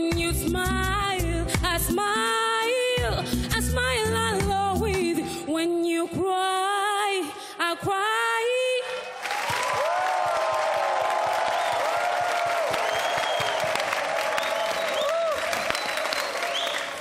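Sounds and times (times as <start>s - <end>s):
audience applauding and cheering: 9.1s - 17.0s
high whistles: 12.8s - 17.0s.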